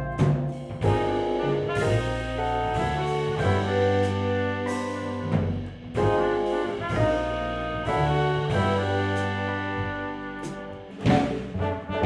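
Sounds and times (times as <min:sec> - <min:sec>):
jazz band playing: 0:00.0 - 0:12.0
brass horns holding long notes: 0:00.9 - 0:12.0.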